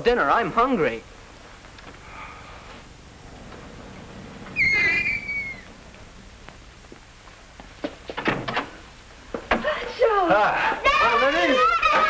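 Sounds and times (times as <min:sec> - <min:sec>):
whistle-like tone: 0:04.6 - 0:05.7.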